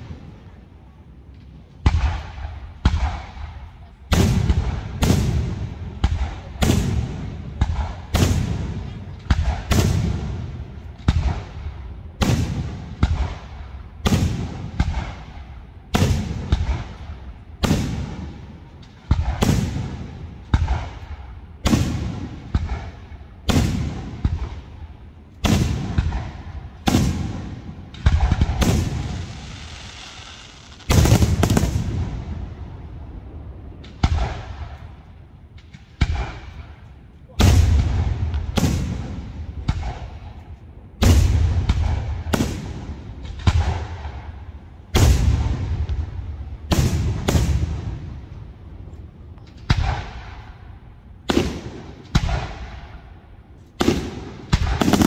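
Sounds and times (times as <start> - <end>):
firework hissing: 29.1 - 31.7.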